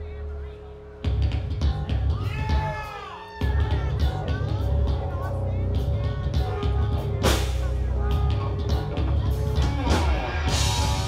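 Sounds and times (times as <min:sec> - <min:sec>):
live rock band: 0:01.1 - 0:11.0.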